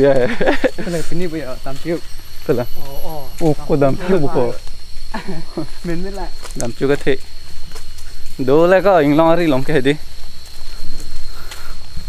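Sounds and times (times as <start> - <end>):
man talking: 0.0 - 4.6, 8.4 - 10.0.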